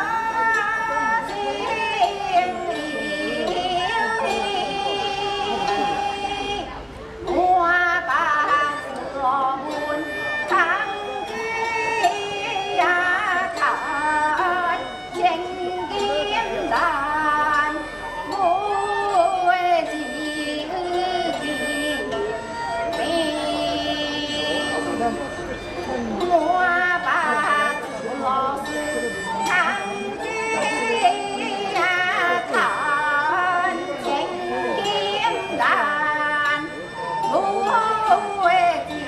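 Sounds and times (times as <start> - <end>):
woman singing ornamented melody: 0.0 - 22.2, 26.2 - 39.0
bamboo flute: 0.0 - 39.0
plucked lute: 0.0 - 39.0.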